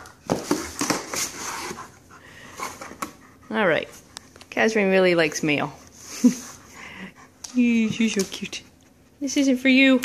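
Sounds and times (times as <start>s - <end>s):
packages rustling and knocking: 0.0s - 1.8s
dog panting: 1.3s - 4.6s, 6.0s - 9.2s.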